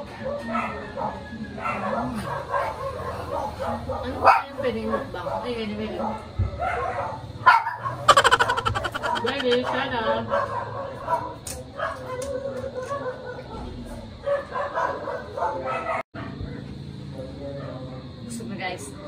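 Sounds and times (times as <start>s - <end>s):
people talking: 8.1s - 10.2s.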